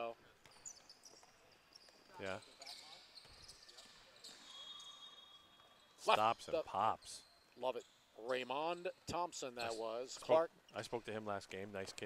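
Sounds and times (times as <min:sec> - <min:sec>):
sneaker squeaks: 0:00.4 - 0:06.1, 0:07.0 - 0:11.0.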